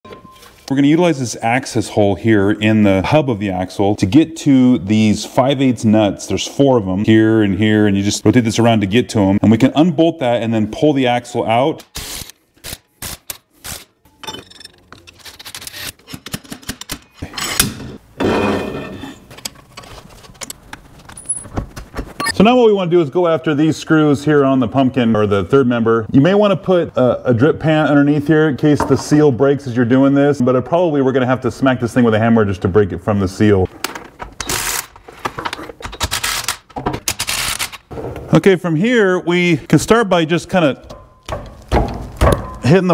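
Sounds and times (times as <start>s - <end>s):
metal clicks and knocks: 40.8s - 42.7s.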